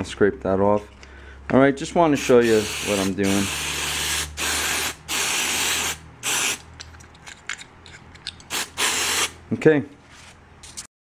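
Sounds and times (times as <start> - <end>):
aerosol spray hissing: 2.2 - 6.6, 8.5 - 9.4.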